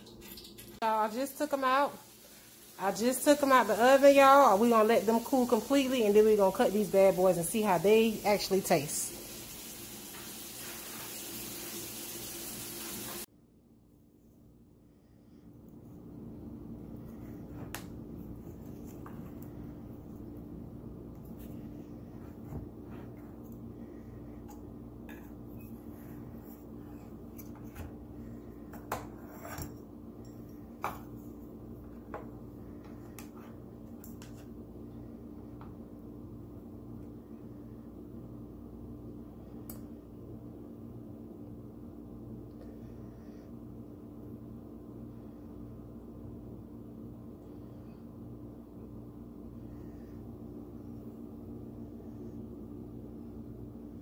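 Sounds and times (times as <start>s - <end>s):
steady low hum: 13.3s - 54.0s
knife scraping a metal pan: 29.0s - 29.8s.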